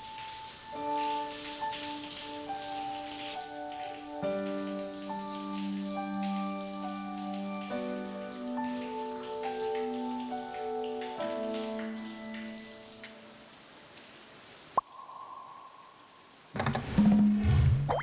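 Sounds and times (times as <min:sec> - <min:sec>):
shower running: 0:00.0 - 0:13.4.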